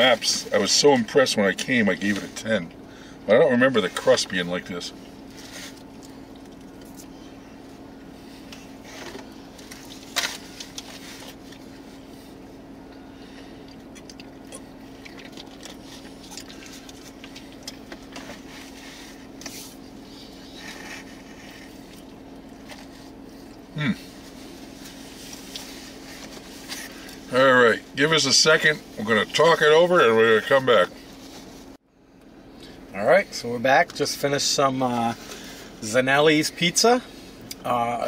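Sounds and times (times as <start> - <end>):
low car hum: 0.0 - 38.0
pizza box handling noises: 8.4 - 11.9, 15.2 - 27.2
man chewing: 13.4 - 27.2.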